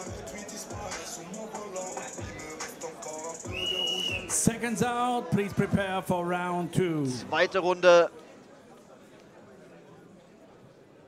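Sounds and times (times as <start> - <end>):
background music with a beat: 0.0 - 5.8.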